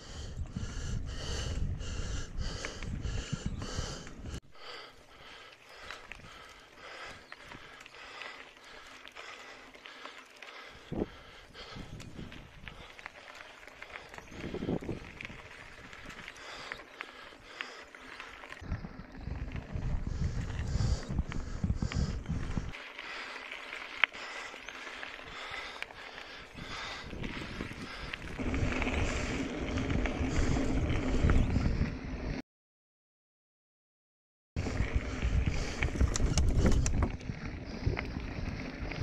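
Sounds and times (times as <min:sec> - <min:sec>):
wind buffeting microphone: 0:00.0 - 0:04.4, 0:10.6 - 0:13.0, 0:14.0 - 0:16.7, 0:18.6 - 0:22.8, 0:24.9 - 0:32.4, 0:34.6 - 0:39.0
bike rolling on dirt road: 0:00.0 - 0:32.4, 0:34.6 - 0:39.0.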